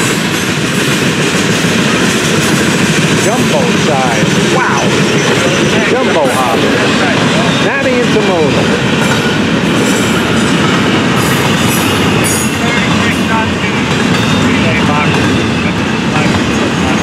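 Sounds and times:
freight train wheels on rails: 0.0s - 17.0s.

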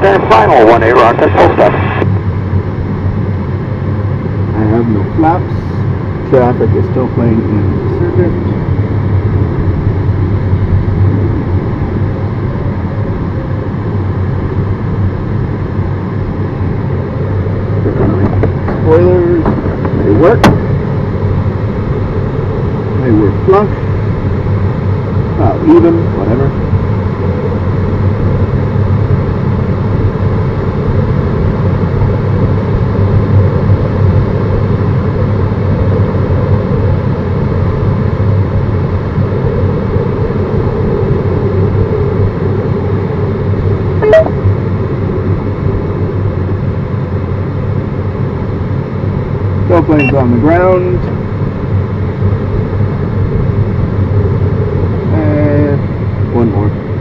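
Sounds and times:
rushing airflow in cockpit: 0.0s - 57.0s.

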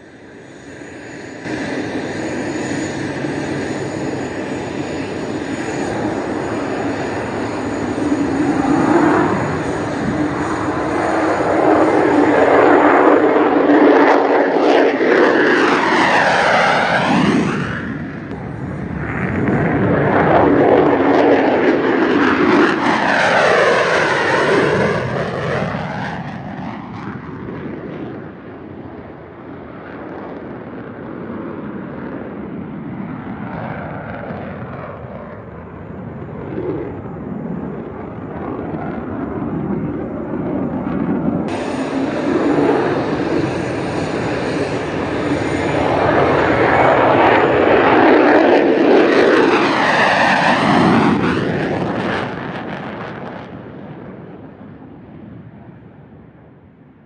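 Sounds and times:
fighter jets flying past: 0.0s - 57.0s.

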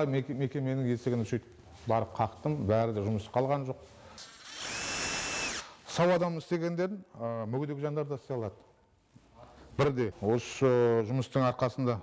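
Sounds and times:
cordless drill motor whine: 4.4s - 5.7s.

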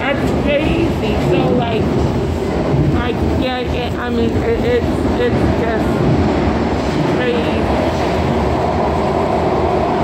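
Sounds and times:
subway car rumbling on track: 0.0s - 10.0s.

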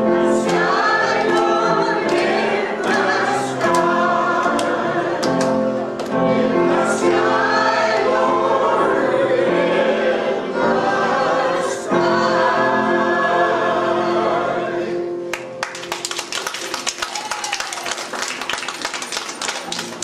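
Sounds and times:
choir singing held chords: 0.0s - 15.6s.

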